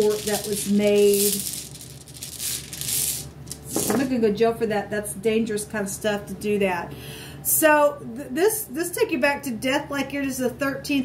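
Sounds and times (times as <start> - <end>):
pieces rattling in a cloth pouch: 0.0 - 3.9.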